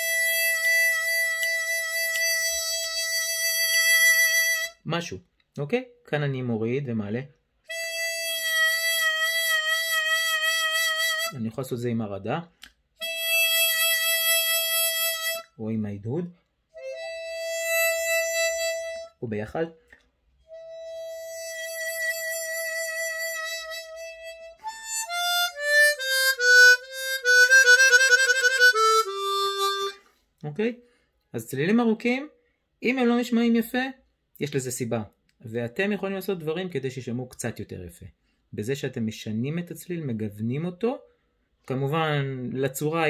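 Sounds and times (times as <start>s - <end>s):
harmonica long note: 0.0s - 4.8s, 7.7s - 11.4s, 13.0s - 15.5s, 16.8s - 19.2s, 20.5s - 30.1s.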